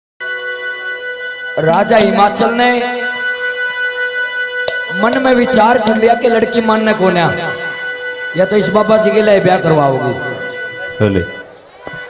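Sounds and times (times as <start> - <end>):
harmonium holding a note: 0.2 - 12.0.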